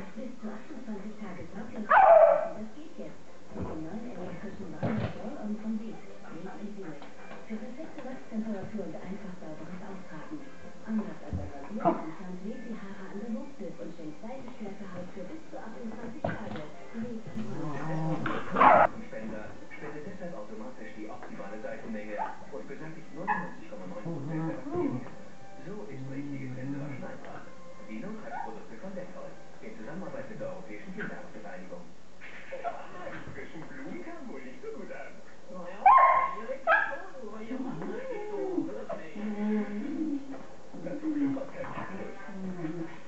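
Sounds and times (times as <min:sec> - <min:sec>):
puppy barking: 0:01.9 - 0:02.6, 0:18.5 - 0:18.9, 0:35.8 - 0:37.1.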